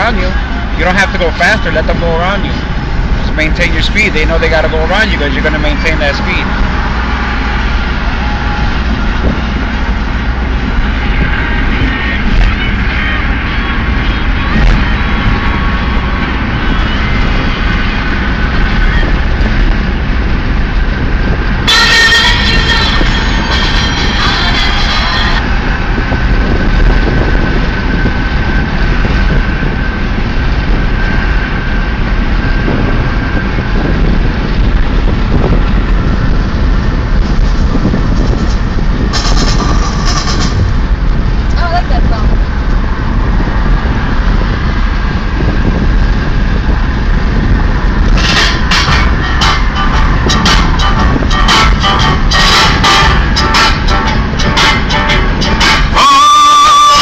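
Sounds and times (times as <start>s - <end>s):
road and wind noise in car: 0.0s - 57.0s
louder higher sounds: 47.8s - 57.0s.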